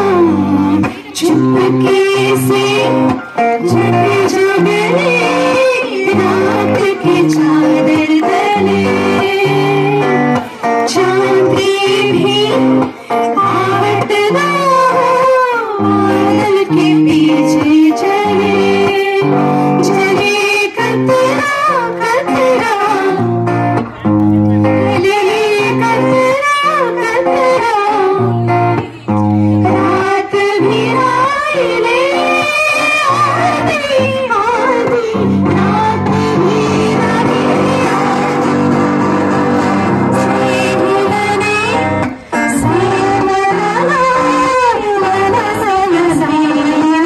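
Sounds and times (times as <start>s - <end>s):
woman singing: 0.0s - 23.9s, 24.6s - 47.0s
electric guitar chords: 0.0s - 47.0s.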